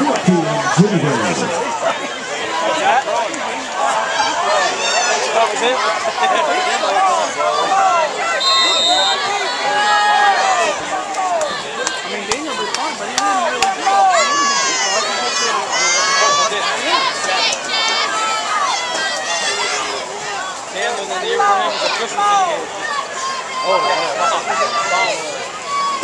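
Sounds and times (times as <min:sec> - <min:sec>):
crowd shouting and cheering: 0:00.0 - 0:26.0.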